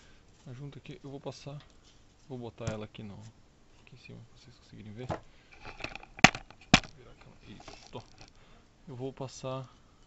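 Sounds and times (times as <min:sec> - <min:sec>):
light rustling: 0:05.0 - 0:08.5
sharp knocks of engine parts: 0:05.1 - 0:08.3.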